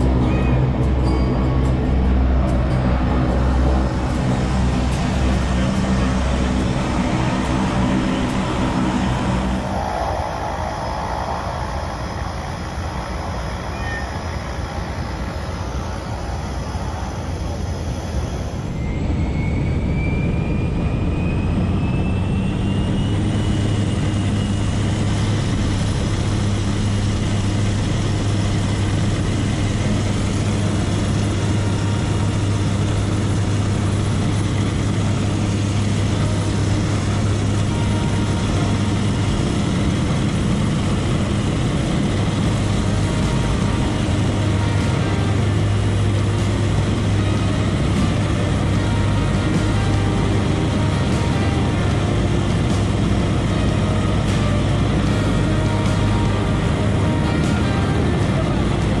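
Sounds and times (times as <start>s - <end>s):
propeller engine drone: 0.0s - 59.0s
thin rising whine: 0.0s - 59.0s.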